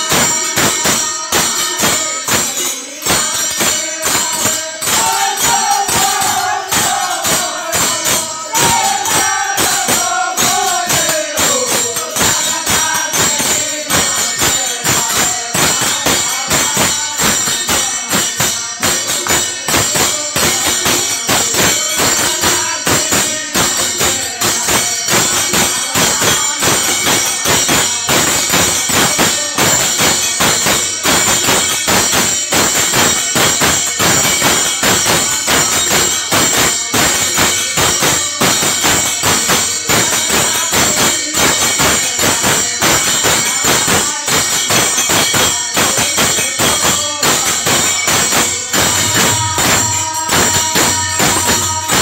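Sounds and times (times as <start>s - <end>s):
dholak drumming: 0.0s - 52.0s
hand cymbals clashing: 0.0s - 52.0s.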